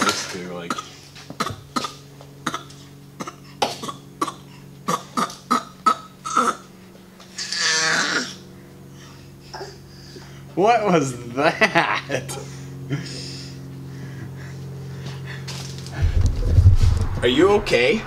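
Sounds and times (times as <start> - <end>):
person coughing: 0.7 - 6.6.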